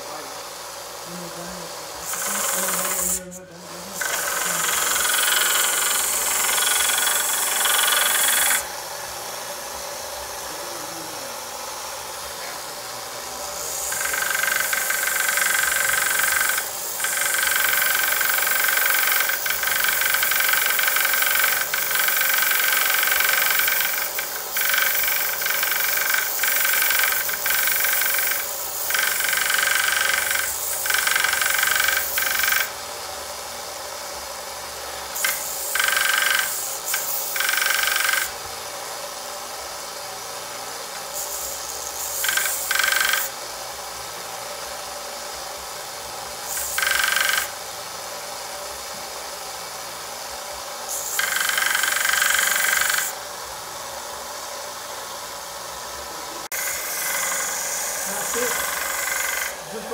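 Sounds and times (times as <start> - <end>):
belt sander grinding wood: 0.0 - 32.8, 34.8 - 39.0, 40.9 - 43.4, 54.4 - 59.9.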